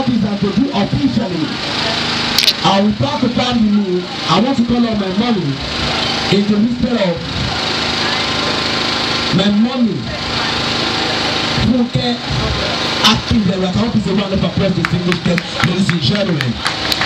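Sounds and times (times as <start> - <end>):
man speaking over a microphone: 0.0 - 2.0, 2.6 - 5.6, 6.3 - 7.5, 9.3 - 10.3, 11.6 - 16.6.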